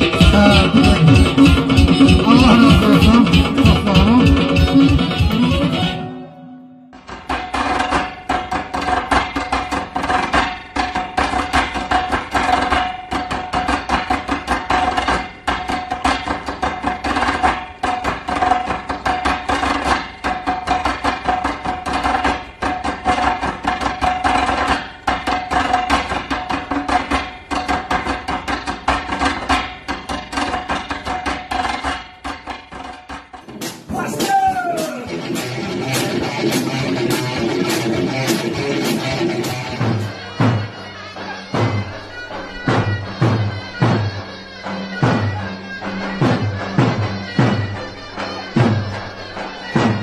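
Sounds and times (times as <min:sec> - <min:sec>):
rapid hand-drum strikes: 0:00.0 - 0:06.0, 0:07.0 - 0:50.0
sustained held note: 0:05.8 - 0:07.0.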